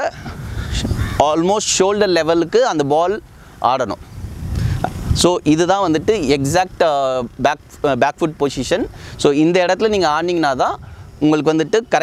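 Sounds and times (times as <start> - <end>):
man speaking: 0.0 - 4.0, 5.2 - 12.0.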